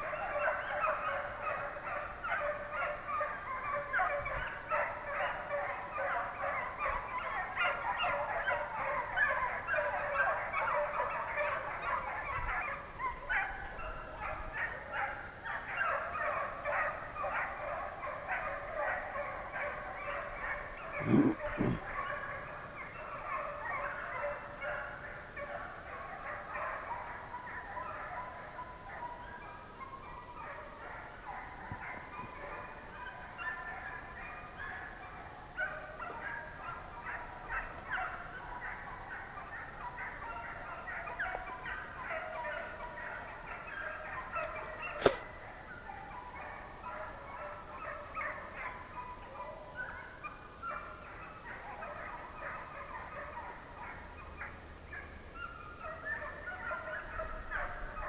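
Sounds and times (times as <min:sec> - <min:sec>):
hounds baying and barking: 0:00.0 - 0:58.0.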